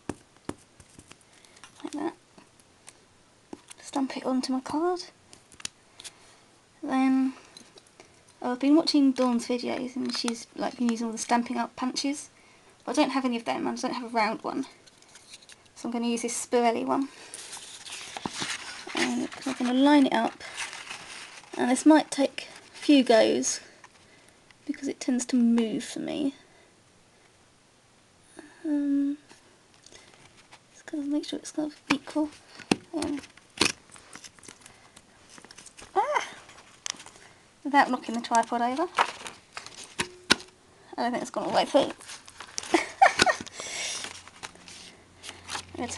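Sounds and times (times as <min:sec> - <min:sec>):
card rustling: 0:00.1 - 0:02.0, 0:17.2 - 0:24.1, 0:31.7 - 0:37.3, 0:37.9 - 0:40.6, 0:41.3 - 0:45.9.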